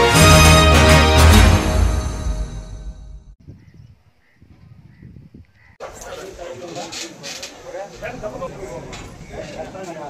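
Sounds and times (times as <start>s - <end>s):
intro theme music: 0.0s - 3.4s
faint bird chirps: 3.4s - 5.8s
wind rumble on microphone: 3.4s - 5.8s.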